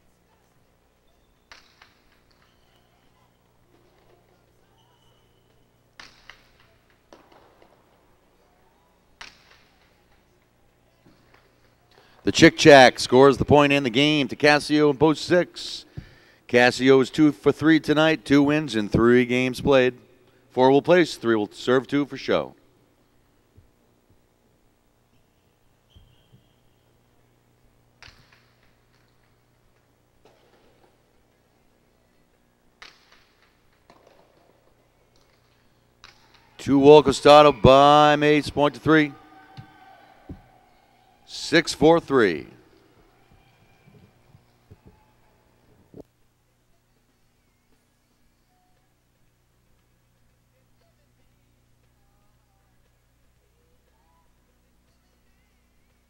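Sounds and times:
low steady hum: 0:00.0 - 0:56.0
ball striking walls echoing: 0:01.4 - 0:08.2, 0:09.1 - 0:13.4, 0:28.0 - 0:31.4, 0:32.3 - 0:41.0
ball cracking off court walls: 0:28.0 - 0:29.4, 0:32.8 - 0:36.5.

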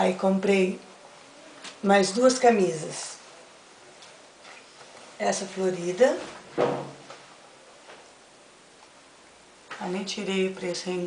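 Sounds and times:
person speaking: 0:00.0 - 0:03.3, 0:05.2 - 0:07.1, 0:09.7 - 0:11.0.

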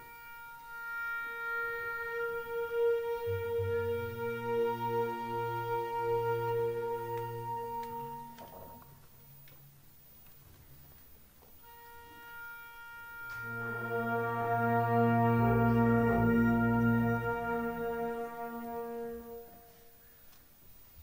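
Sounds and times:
brass ensemble sustained chords: 0:00.0 - 0:08.9, 0:11.6 - 0:20.0.

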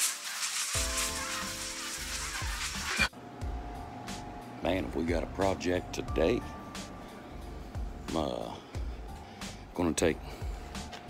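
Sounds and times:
shimmering hissy synth wash: 0:00.0 - 0:03.1
bass beat: 0:03.4 - 0:04.3.

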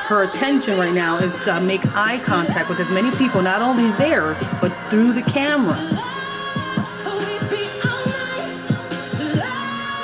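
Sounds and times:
woman singing slow pop song: 0:00.0 - 0:10.0.

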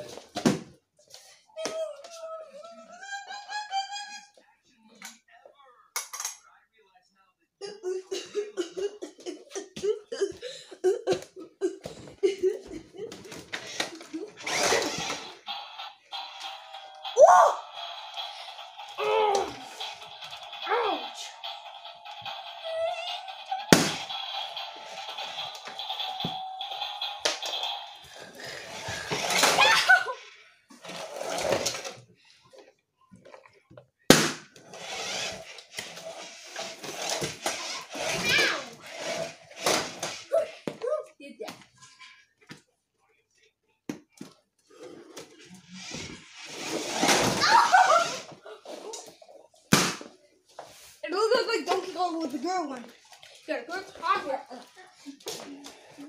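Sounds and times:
child vocalising: 0:19.0 - 0:19.7
balloons popping: 0:23.7 - 0:24.1, 0:34.1 - 0:34.5, 0:49.7 - 0:50.1.

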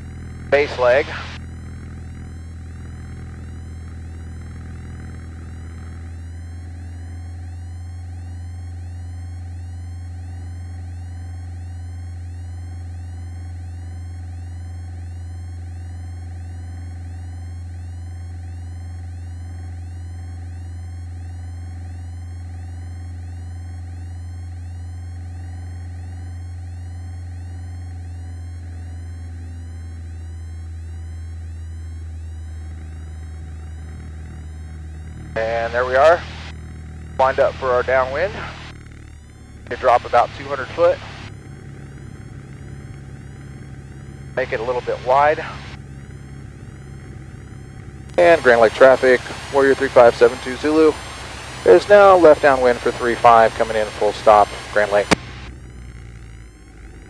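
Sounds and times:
aircraft engine droning: 0:00.0 - 0:10.9, 0:31.8 - 0:57.0
low hum: 0:00.0 - 0:57.0
fast electronic pulsing: 0:30.6 - 0:57.0.

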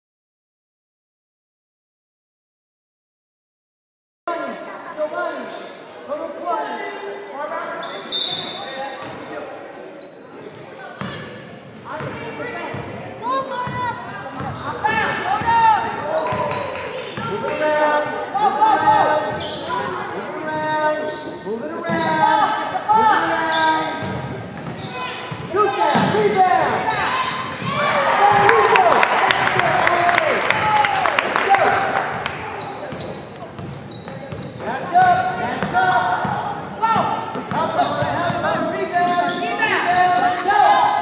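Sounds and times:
shoes squeaking: 0:16.1 - 0:17.4, 0:18.7 - 0:22.4, 0:32.2 - 0:41.0.

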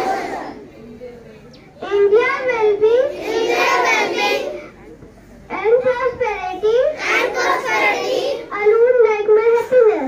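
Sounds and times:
children reciting in chorus: 0:00.0 - 0:00.7, 0:01.8 - 0:04.8, 0:05.6 - 0:08.8
girl speaking into a microphone: 0:00.0 - 0:10.0.

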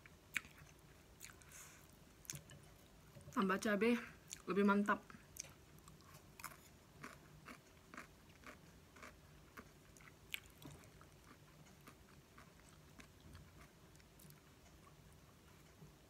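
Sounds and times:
chewing noodles: 0:05.4 - 0:15.0.

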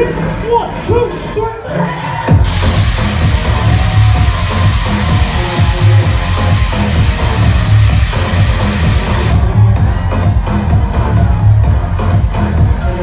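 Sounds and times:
loud electronic dance music: 0:00.0 - 0:13.0
heavy bass line: 0:02.3 - 0:13.0
high hissing wash: 0:02.4 - 0:09.3.

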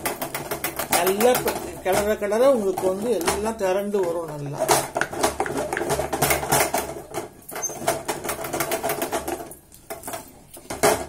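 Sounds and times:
spatula knocking and scraping pot: 0:00.0 - 0:11.0.

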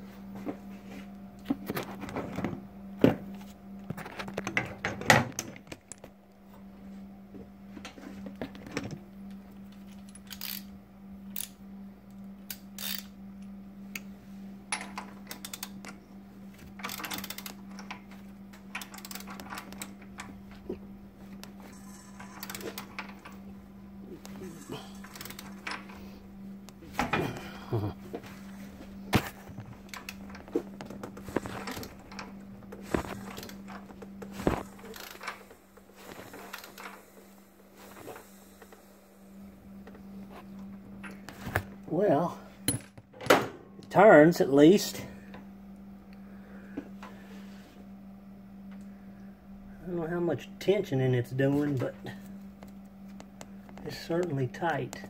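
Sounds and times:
steady low hum: 0:00.0 - 0:55.0
wrench clicking on metal: 0:10.2 - 0:10.7, 0:12.5 - 0:13.1, 0:16.9 - 0:18.0, 0:18.8 - 0:19.9, 0:25.0 - 0:25.8.

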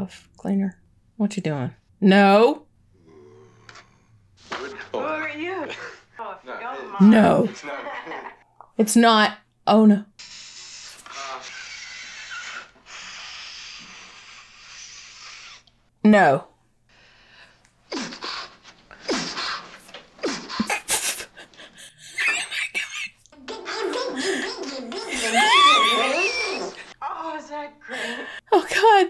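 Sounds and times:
film soundtrack hiss: 0:03.7 - 0:08.5, 0:10.2 - 0:15.9
laughter: 0:07.5 - 0:08.4, 0:20.6 - 0:26.9.

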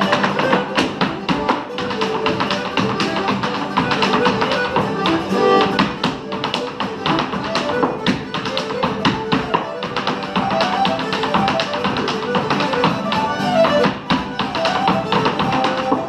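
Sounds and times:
dance shoes tapping wooden floor: 0:00.0 - 0:16.0
lively dance tune: 0:00.0 - 0:16.0.

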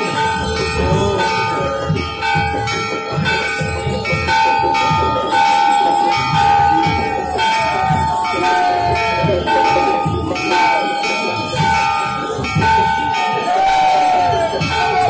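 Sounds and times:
temple bells ringing: 0:00.0 - 0:15.0
quick low beat: 0:00.1 - 0:15.0.

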